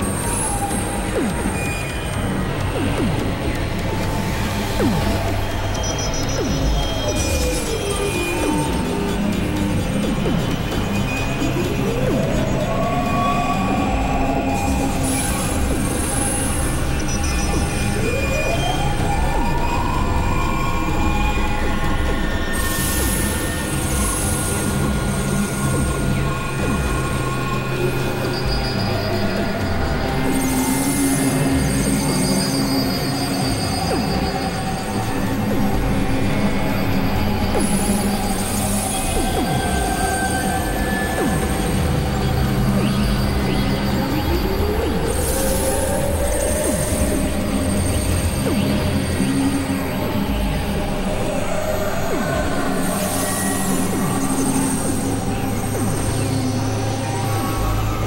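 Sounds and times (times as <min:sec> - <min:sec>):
tone gliding upward: 0:00.0 - 0:09.0
industrial noise music: 0:00.0 - 0:58.0
low synthesizer drones: 0:00.0 - 0:58.0.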